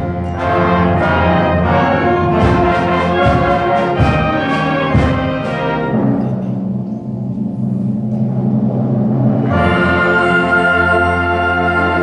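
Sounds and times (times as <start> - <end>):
concert band playing: 0.0 - 12.0
drum strikes: 0.7 - 7.3.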